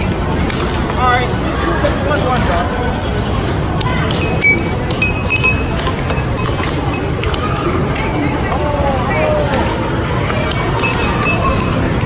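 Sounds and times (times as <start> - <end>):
crowd chatter: 0.0 - 12.0
air hockey puck clacks: 3.8 - 8.5, 9.6 - 12.0.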